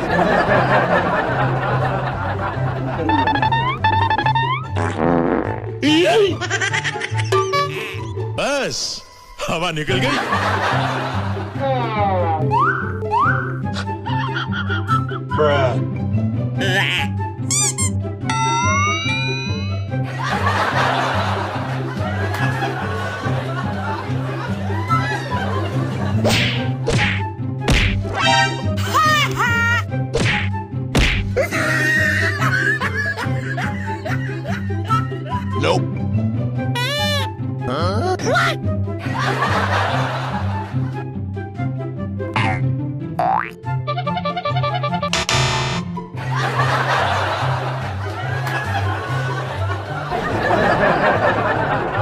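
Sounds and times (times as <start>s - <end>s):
background music with bass line: 0.0s - 8.4s, 29.9s - 52.0s
buzzy fart-like sound effect: 3.0s - 5.8s
whip-swish sound effects: 26.2s - 28.6s, 30.1s - 31.3s.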